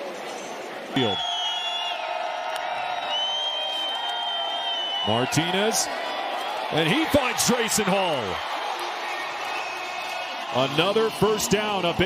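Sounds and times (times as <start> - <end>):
stadium crowd noise: 0.0 - 12.0
high whistle-like tones: 1.0 - 2.1, 3.0 - 5.3.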